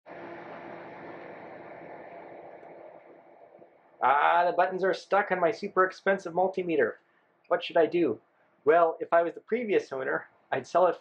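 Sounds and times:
faint low hum: 0:00.1 - 0:11.0.

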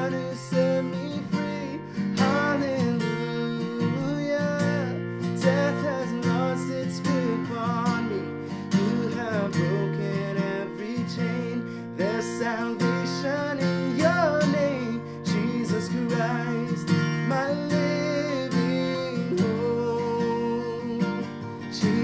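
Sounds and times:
acoustic guitar strummed chords: 0:00.0 - 0:22.0
man singing: 0:00.0 - 0:22.0.

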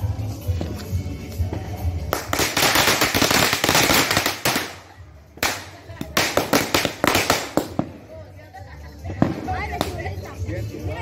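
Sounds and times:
firecrackers popping in bonfire: 0:01.4 - 0:08.4, 0:09.0 - 0:10.3.

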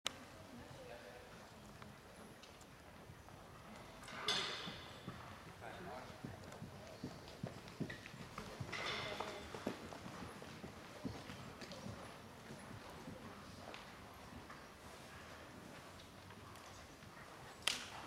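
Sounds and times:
hoofbeats on sand: 0:06.0 - 0:15.9.

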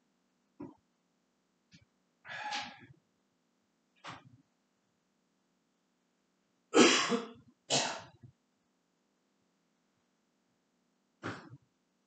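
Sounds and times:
person clearing throat: 0:06.8 - 0:08.2.

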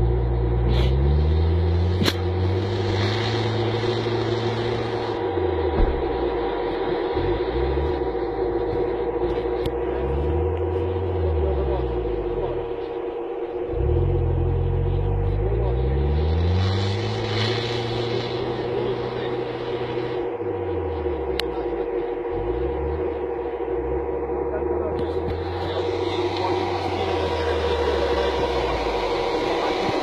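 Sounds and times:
car engine revving: 0:00.0 - 0:30.0
constant whine: 0:00.0 - 0:30.0.

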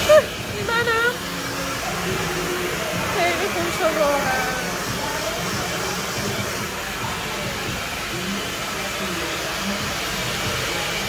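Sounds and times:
faint voices: 0:00.0 - 0:11.0
hair dryer blowing: 0:00.0 - 0:11.0.

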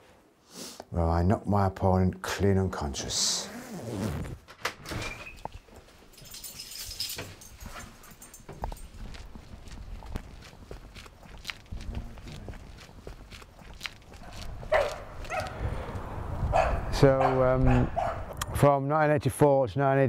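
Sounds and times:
footsteps on tarmac: 0:08.4 - 0:17.7
dog barking: 0:14.2 - 0:15.6, 0:16.5 - 0:18.3.

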